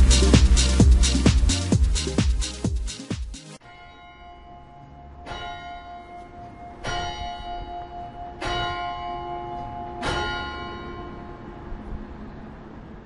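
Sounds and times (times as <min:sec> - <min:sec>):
low rumble: 0:00.0 - 0:02.2
electronic backing track: 0:00.0 - 0:03.6
bell ringing: 0:03.6 - 0:11.7.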